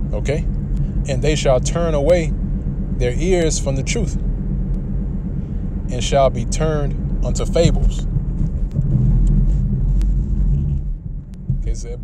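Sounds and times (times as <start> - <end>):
loud low vehicle rumble: 0.0 - 12.0.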